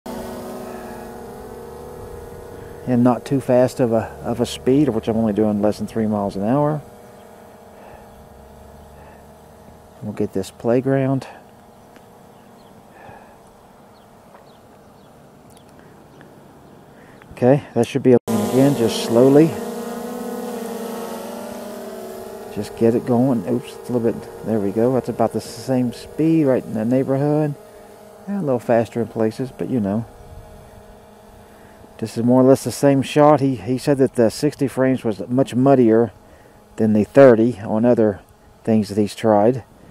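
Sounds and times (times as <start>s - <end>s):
drone propellers humming: 0.0s - 17.4s, 18.3s - 39.9s.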